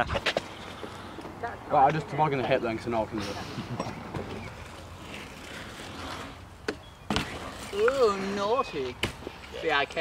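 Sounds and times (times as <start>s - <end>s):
bike tyres rolling on concrete: 3.8s - 10.0s.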